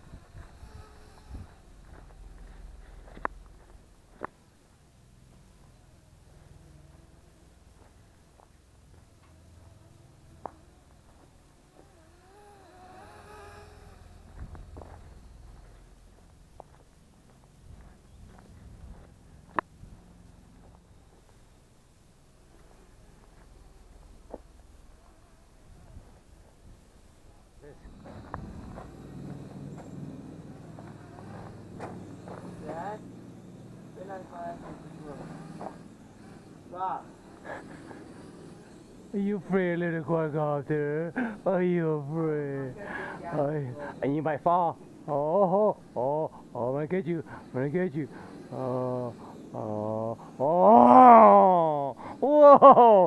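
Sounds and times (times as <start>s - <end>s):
quadcopter buzzing hum: 0.0s - 21.5s, 22.2s - 26.9s, 27.5s - 53.0s
faint voices: 27.3s - 52.5s.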